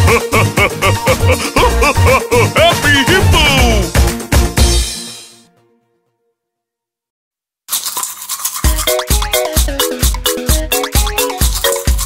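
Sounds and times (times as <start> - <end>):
children's song with bass beat: 0.0 - 4.9
cartoon toothbrush scrubbing effect: 7.7 - 12.0.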